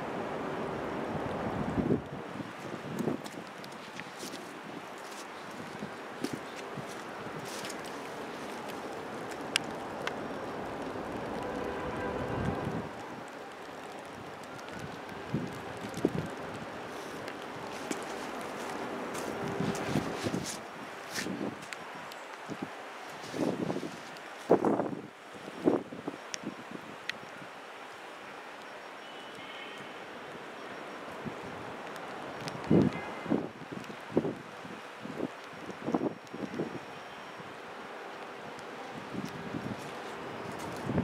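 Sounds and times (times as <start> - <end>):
outdoor background hiss: 0.0 - 41.0
wind on microphone: 1.0 - 9.9, 10.6 - 13.3, 14.1 - 21.8, 22.4 - 27.1, 38.9 - 41.0
faint clicks and scuffs: 2.6 - 10.2, 13.6 - 24.9.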